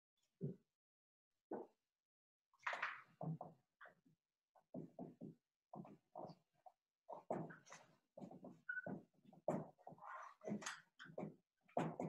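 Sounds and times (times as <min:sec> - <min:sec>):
marker squeaking on whiteboard: 0:08.7 - 0:09.0, 0:10.0 - 0:10.5.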